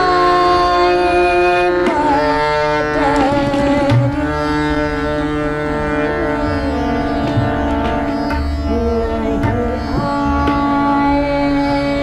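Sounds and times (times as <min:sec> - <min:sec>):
harmonium sustained notes: 0:00.0 - 0:12.0
tabla strokes: 0:00.0 - 0:12.0
woman singing: 0:00.0 - 0:12.0.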